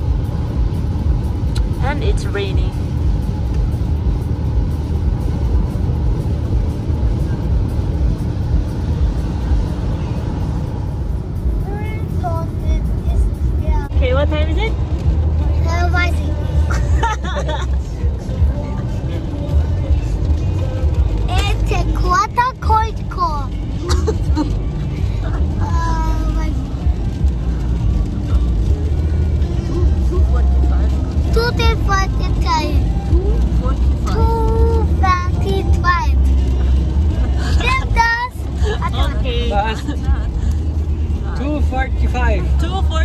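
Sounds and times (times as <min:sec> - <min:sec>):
music: 0:00.0 - 0:43.0
rain and tyre spray hiss: 0:00.0 - 0:43.0
road and engine rumble: 0:00.0 - 0:43.0.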